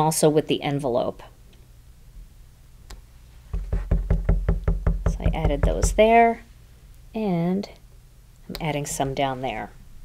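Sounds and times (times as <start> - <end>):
stamp tapping on ink pad: 3.6 - 6.0.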